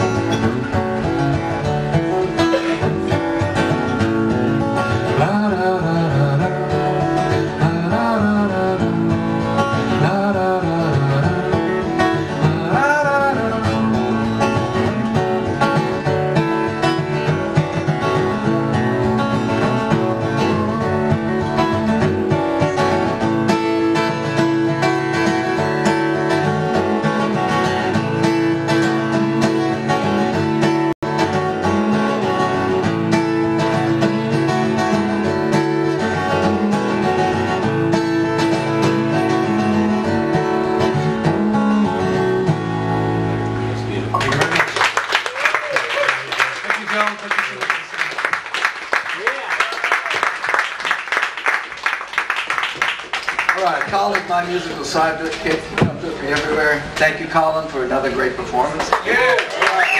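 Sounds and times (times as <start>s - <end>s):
acoustic guitar playing: 0.0s - 45.2s.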